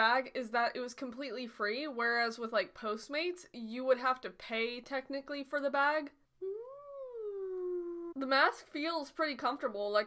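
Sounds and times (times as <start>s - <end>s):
woman humming: 6.4s - 8.2s.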